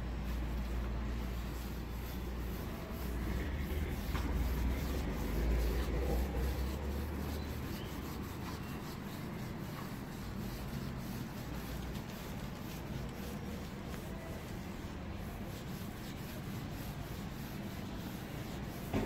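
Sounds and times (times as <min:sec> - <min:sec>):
sponge scrubbing paint on wood: 0:00.0 - 0:19.0.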